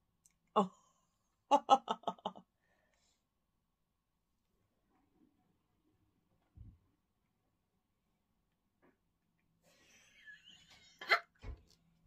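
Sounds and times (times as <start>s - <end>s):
soft breathing: 2.6s - 3.4s.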